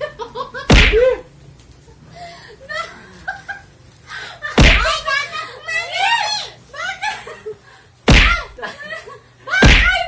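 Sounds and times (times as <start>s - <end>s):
loud thump: 0.7s - 1.1s, 4.6s - 5.0s, 8.1s - 8.6s, 9.6s - 10.0s
excited voices: 4.6s - 7.3s, 9.5s - 10.0s
woman laughing: 6.7s - 7.6s, 8.4s - 10.0s.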